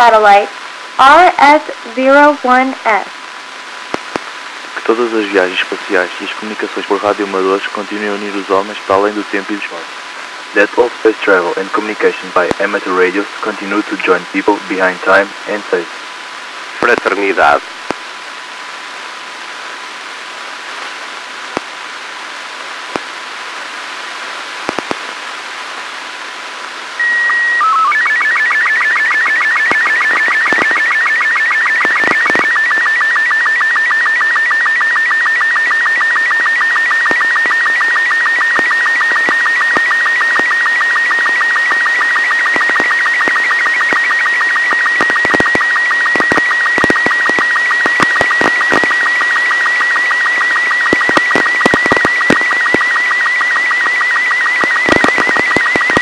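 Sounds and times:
radio receiver hiss: 0.0 - 56.0
warbling chirping image signal: 27.0 - 56.0.

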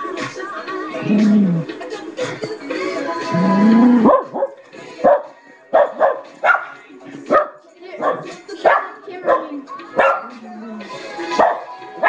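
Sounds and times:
dog barking: 4.0 - 10.4, 11.3 - 11.8.

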